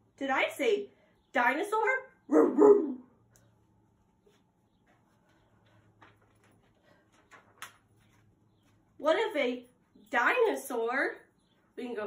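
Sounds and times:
dog barking: 0:02.3 - 0:03.0.

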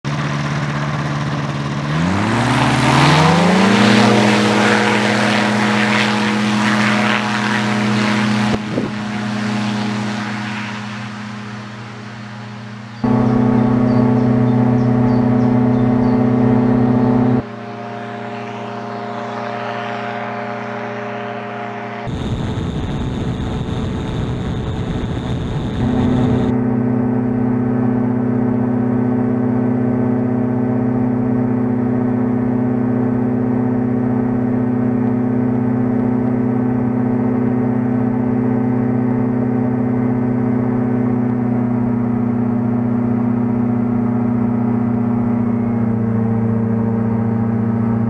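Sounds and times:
microlight engine and propeller: 0:00.0 - 0:48.0.

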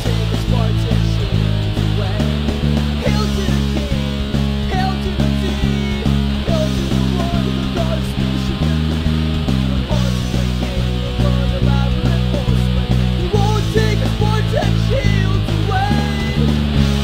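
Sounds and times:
bass guitar: 0:00.0 - 0:17.0
electric guitars: 0:00.0 - 0:17.0.

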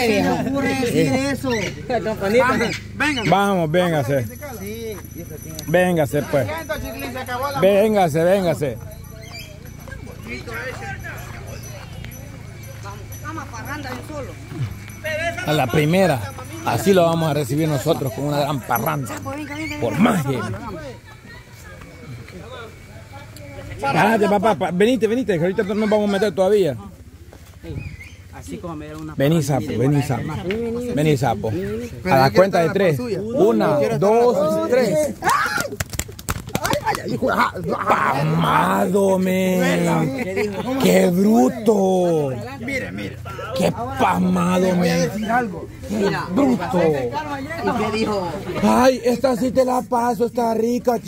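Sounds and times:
faint people talking: 0:00.0 - 0:51.0
person shouting: 0:34.5 - 0:35.8
hands slapping a back: 0:35.2 - 0:37.1.

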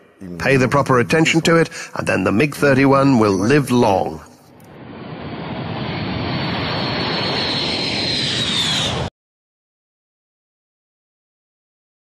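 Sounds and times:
high jet whine: 0:04.3 - 0:09.1
jet engine roar: 0:04.4 - 0:09.1.

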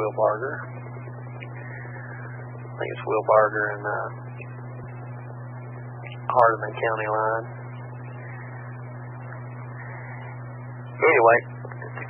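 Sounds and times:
electrical hum with hiss: 0:00.0 - 0:12.0.

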